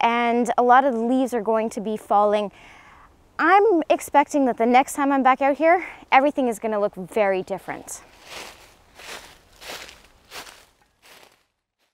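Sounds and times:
footsteps crunching dry leaves: 8.0s - 11.9s.

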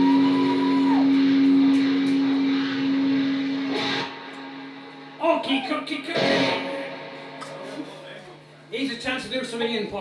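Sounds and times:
distorted electric guitar note: 0.0s - 8.5s.

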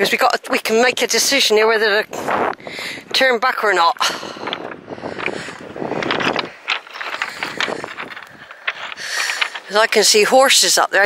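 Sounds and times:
footsteps on pebbles: 2.3s - 11.0s.

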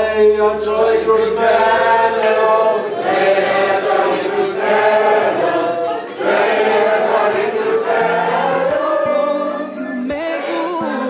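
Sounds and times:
group of people singing: 0.0s - 11.0s.

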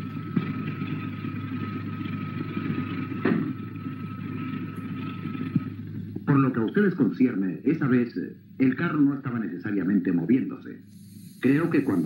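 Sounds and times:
motor cart rumbling: 0.0s - 6.2s
thin steady whine: 0.0s - 12.0s.

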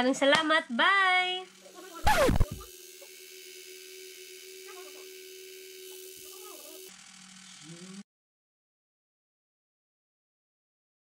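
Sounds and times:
facial device vibrating buzz: 0.5s - 8.1s.

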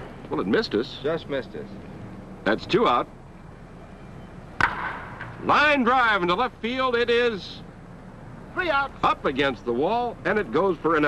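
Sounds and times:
wooden bat hitting ball: 4.6s - 5.4s.

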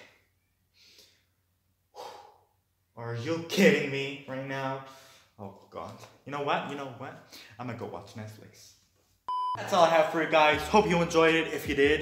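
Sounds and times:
faint breath: 1.9s - 2.5s.

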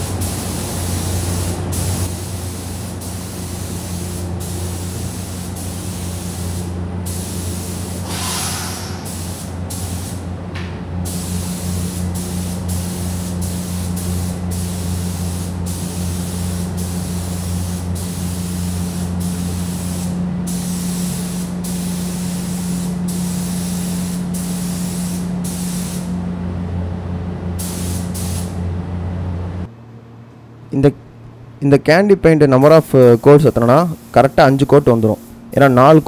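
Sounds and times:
spray gun hissing: 0.0s - 10.2s, 11.1s - 26.1s, 27.6s - 28.6s
low machine hum: 0.0s - 36.0s.

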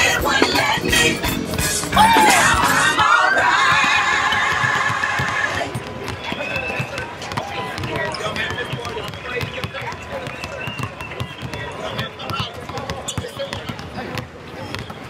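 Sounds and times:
gospel singing: 0.0s - 5.7s.

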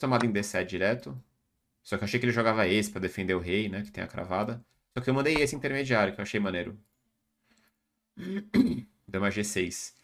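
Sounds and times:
man clearing throat: 8.2s - 9.0s.

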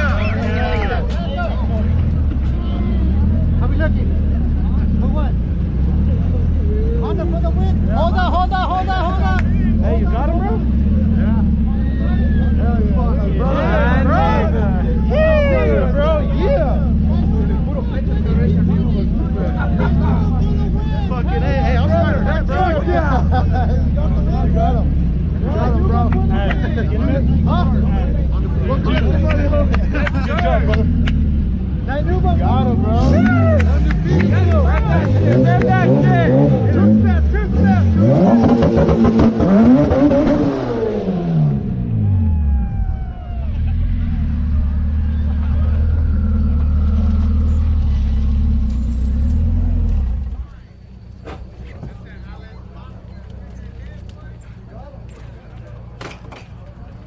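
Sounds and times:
car engine running: 0.0s - 57.0s
men talking: 0.0s - 57.0s.

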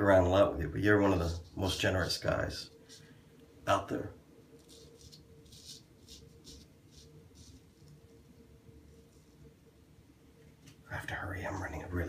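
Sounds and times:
razor scraping stubble: 4.6s - 8.0s.

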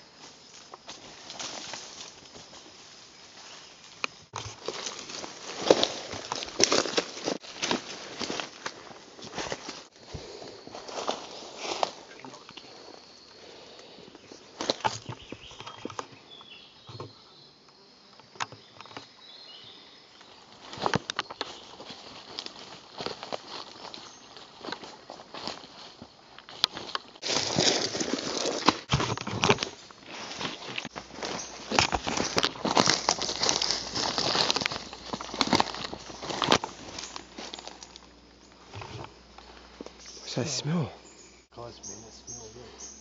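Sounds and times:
footsteps crunching through leaves: 0.1s - 12.2s, 20.5s - 38.1s.

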